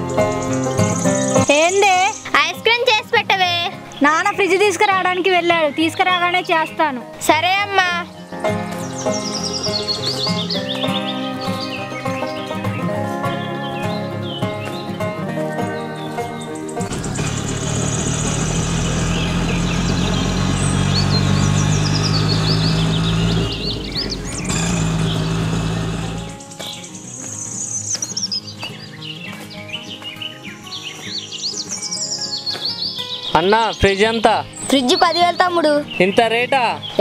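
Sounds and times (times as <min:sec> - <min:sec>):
background music: 0:00.0 - 0:37.0
birds chirping: 0:00.0 - 0:37.0
auto-rickshaw engine running: 0:16.8 - 0:26.7.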